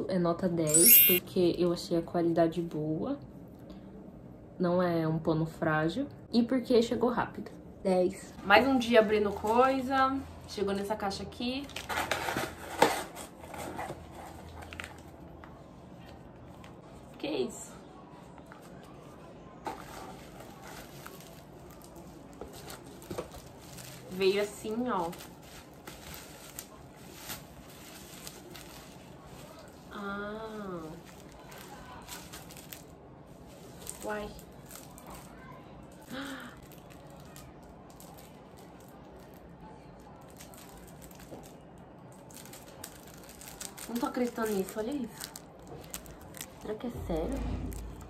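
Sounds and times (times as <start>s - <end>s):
bubble wrap rustling: 18.6s - 47.0s.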